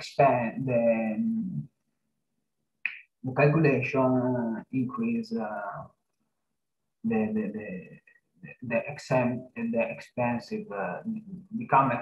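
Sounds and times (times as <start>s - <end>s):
man talking: 0.0s - 1.7s, 3.2s - 6.0s, 7.0s - 12.0s.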